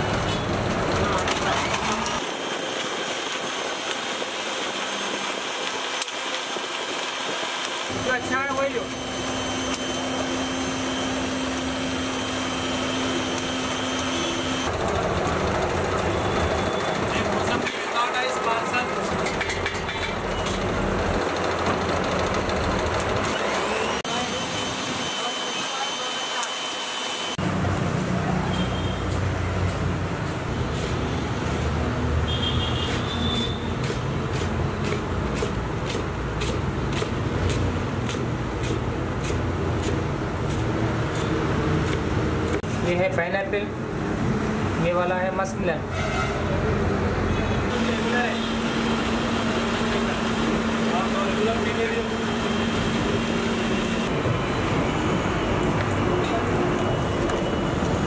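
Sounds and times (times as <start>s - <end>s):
people talking: 17.1s - 19.0s, 47.3s - 48.5s, 49.9s - 52.3s
passing traffic: 27.3s - 43.1s, 43.7s - 58.0s.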